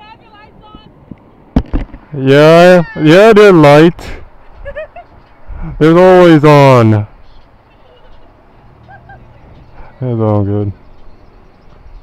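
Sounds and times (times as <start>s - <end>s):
low steady street hum: 0.0s - 12.0s.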